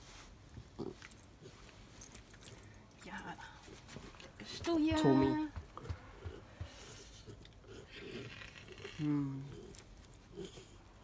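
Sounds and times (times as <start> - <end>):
fur and blanket rustling: 0.0 - 0.6.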